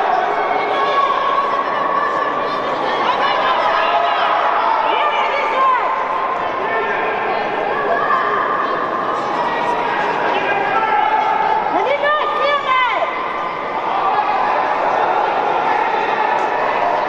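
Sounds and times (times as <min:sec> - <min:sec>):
crowd chattering and calling out: 0:00.0 - 0:17.0
loud shouts: 0:00.0 - 0:17.0.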